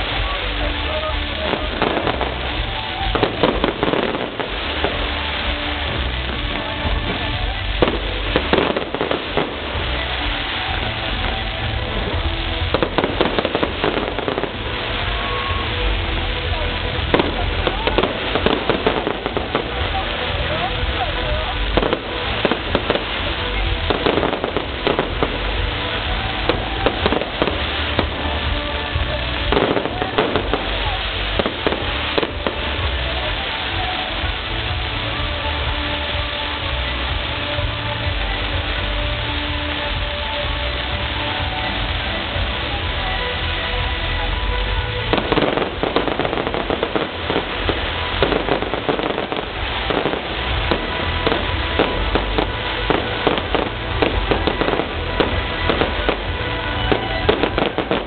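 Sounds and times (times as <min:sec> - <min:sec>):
fireworks pops and bangs: 0:00.0 - 0:58.0.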